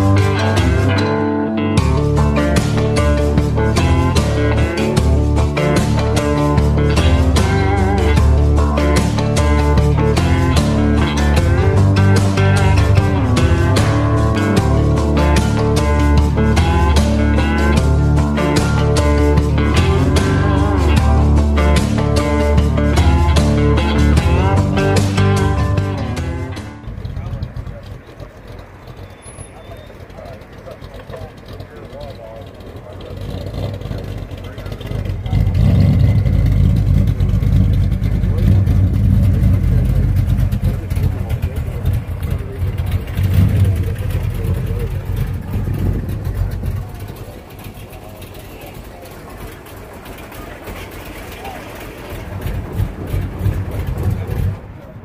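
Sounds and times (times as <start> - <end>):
car engine rumbling: 0.0 - 55.0
people talking: 26.8 - 55.0.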